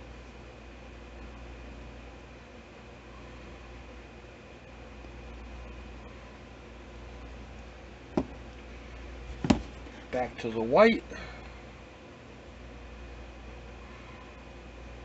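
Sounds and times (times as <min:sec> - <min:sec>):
low room hum: 0:00.0 - 0:15.0
plastic bottle knocking on cardboard: 0:08.2 - 0:08.4, 0:09.4 - 0:09.7.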